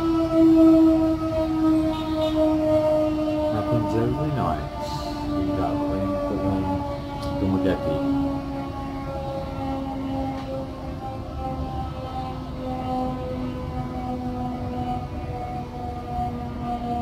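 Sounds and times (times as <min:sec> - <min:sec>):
siren long steady tone: 0:00.0 - 0:17.0.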